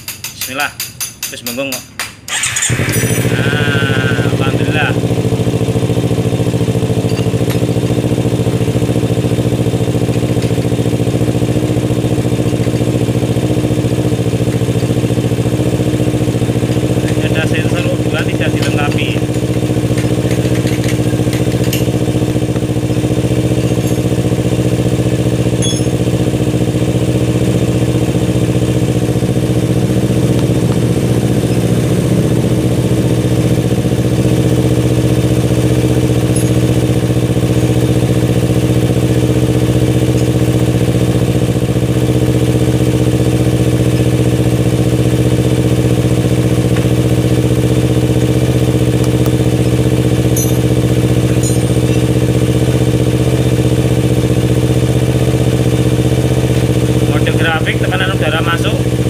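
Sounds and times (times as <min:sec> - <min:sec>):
motorcycle engine idling: 0:01.0 - 0:59.0.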